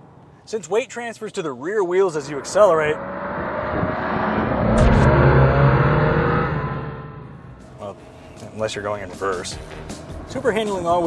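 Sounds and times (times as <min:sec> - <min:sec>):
car accelerating past: 0:02.2 - 0:11.0.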